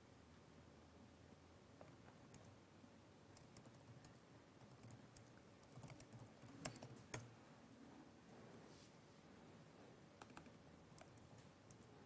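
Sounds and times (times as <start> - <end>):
typing on computer keyboard: 3.3 - 7.3, 10.2 - 11.9.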